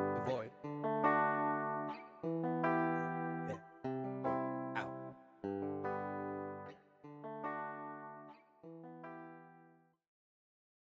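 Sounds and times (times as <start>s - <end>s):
ringing guitar chords: 0.0s - 9.8s.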